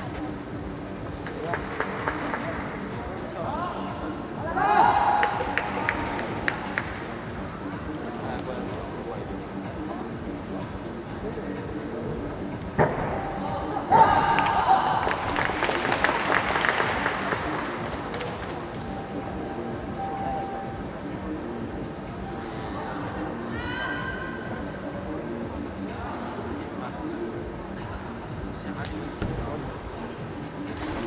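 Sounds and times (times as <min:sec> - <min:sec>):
applause: 0:01.3 - 0:02.6, 0:05.2 - 0:07.0, 0:14.4 - 0:18.6.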